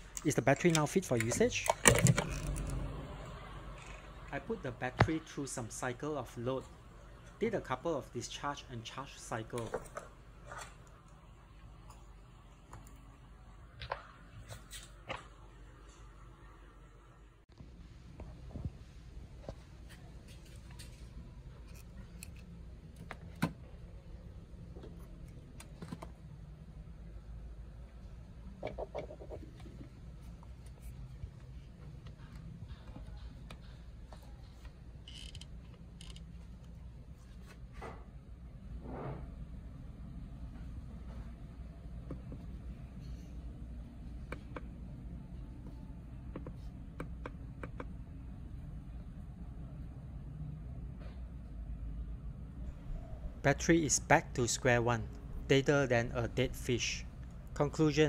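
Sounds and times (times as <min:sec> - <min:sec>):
clamps and cables clicking: 0:00.0 - 0:02.8
low steady hum: 0:00.0 - 0:58.0.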